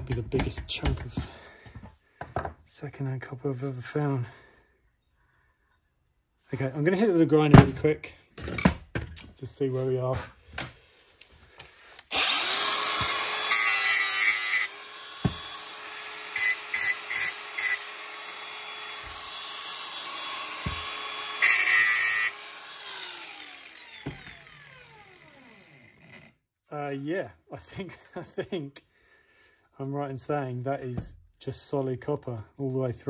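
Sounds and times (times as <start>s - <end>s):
angle grinder cutting metal: 12.0s - 26.3s
grinder motor whine: 12.0s - 26.3s.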